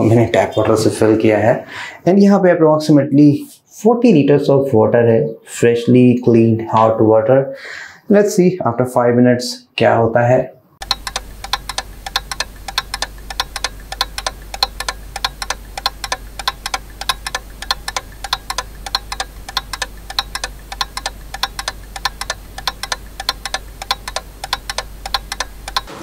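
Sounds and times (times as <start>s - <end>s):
clock ticking: 10.8s - 26.0s
low steady hum: 10.8s - 26.0s.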